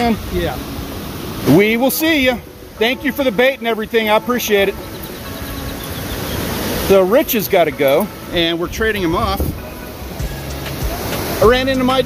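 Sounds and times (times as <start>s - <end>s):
beach surf: 0.0s - 12.0s
wind: 0.0s - 12.0s.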